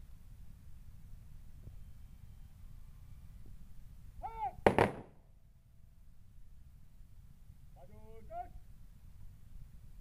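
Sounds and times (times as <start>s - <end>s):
shouted command: 4.2s - 4.6s
rifle shots: 4.6s - 5.2s.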